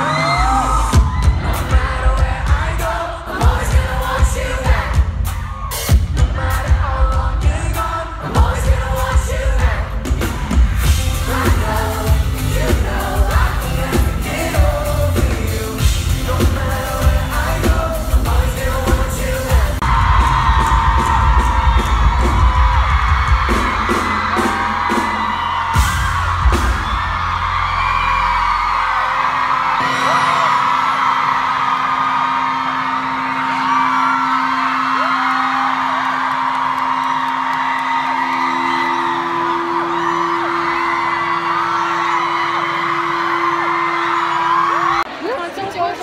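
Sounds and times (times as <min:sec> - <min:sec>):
pop-rock band playing: 0:00.0 - 0:41.9
crowd screaming and cheering: 0:00.0 - 0:46.0.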